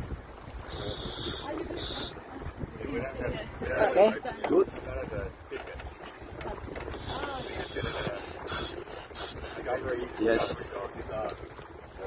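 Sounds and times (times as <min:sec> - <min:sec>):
wind rumble on microphone: 0:00.0 - 0:12.0
scuba regulator hissing: 0:00.7 - 0:02.2, 0:07.0 - 0:09.6.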